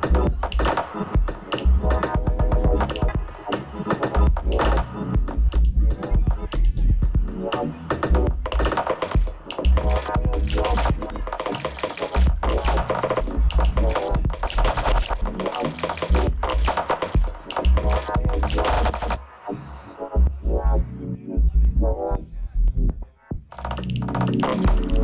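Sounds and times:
electronic dance music: 0.0s - 19.5s.

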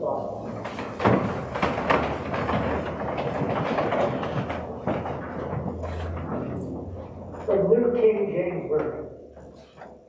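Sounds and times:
people rising from wooden pews: 0.2s - 7.6s.

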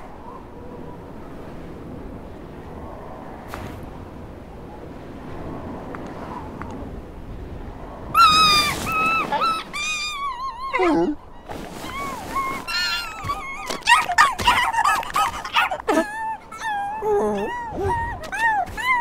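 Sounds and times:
cartoon seal squeals and whimpers: 8.2s - 19.0s.

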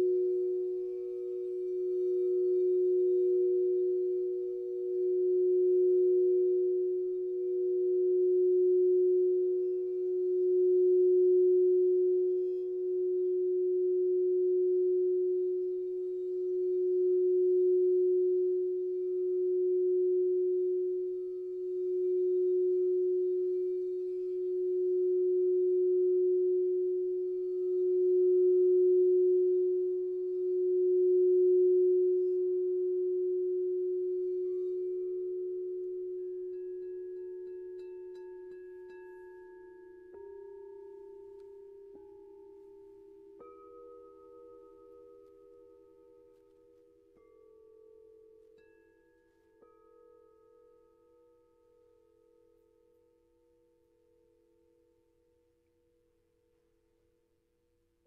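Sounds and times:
crystal singing bowls ringing: 0.0s - 55.2s.

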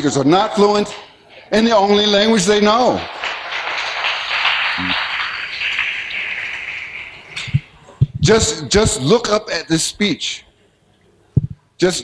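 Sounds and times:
audience applauding: 2.0s - 7.8s.

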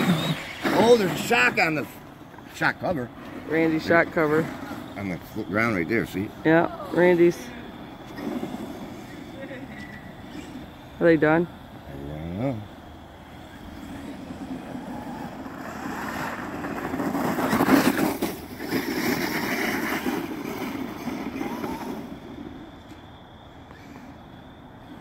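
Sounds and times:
tyres churning dirt and slush: 0.0s - 11.1s, 11.9s - 22.8s.

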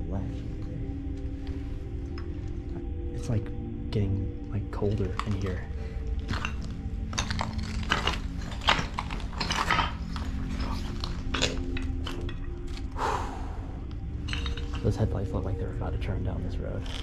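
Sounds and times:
footsteps crunching over rubble: 5.0s - 13.0s.

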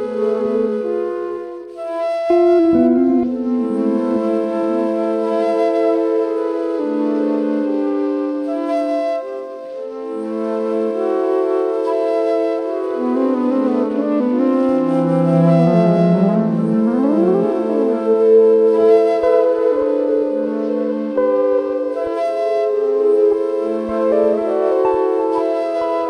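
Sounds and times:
flute: 0.0s - 26.0s
looped electric guitar soundscapes: 0.0s - 26.0s.

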